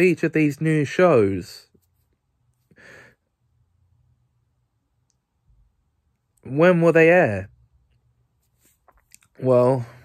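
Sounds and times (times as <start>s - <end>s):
man sighing breath: 2.7s - 3.2s.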